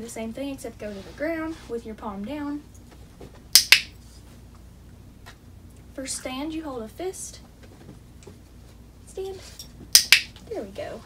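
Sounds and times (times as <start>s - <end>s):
clicker clicks: 3.6s - 3.9s, 10.0s - 10.3s.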